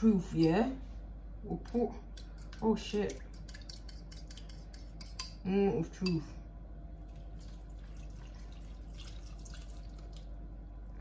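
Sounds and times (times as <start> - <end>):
liquid pouring: 7.0 - 11.0
soft drips: 7.0 - 11.0.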